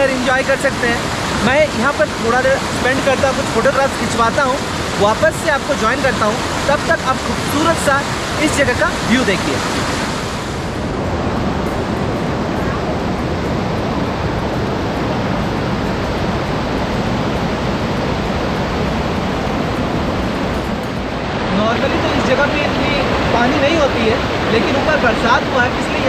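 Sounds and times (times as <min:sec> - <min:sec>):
man talking: 0:00.0 - 0:09.7, 0:21.5 - 0:26.0
river water rushing: 0:00.0 - 0:26.0.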